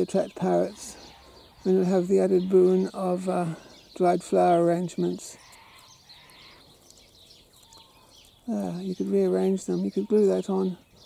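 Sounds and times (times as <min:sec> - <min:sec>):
distant bird chirps: 0:00.0 - 0:11.0.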